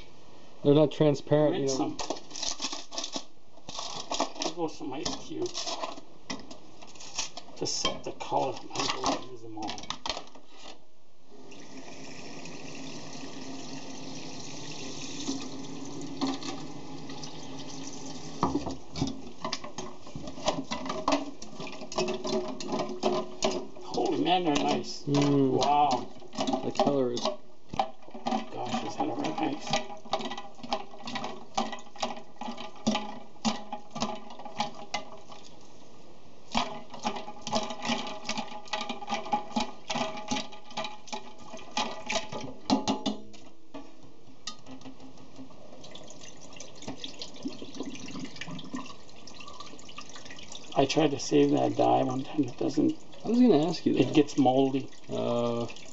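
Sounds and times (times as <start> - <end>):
ice clinking against metal pot: 15.2 - 35.3, 36.5 - 43.5.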